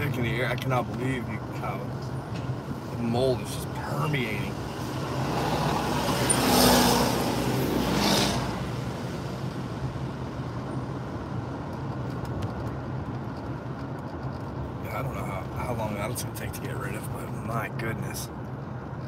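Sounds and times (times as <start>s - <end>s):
car cabin road noise: 0.0s - 19.0s
vehicle passing: 2.6s - 11.4s
truck passing close by: 4.6s - 9.8s.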